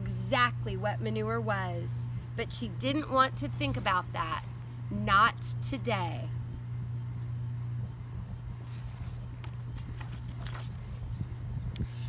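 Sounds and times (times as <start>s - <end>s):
steady low rumble: 0.0s - 12.0s
book page turning: 8.6s - 11.4s.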